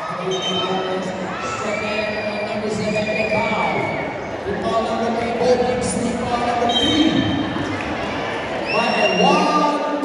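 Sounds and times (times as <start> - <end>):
spectators' voices and shouts: 0.0 - 10.0.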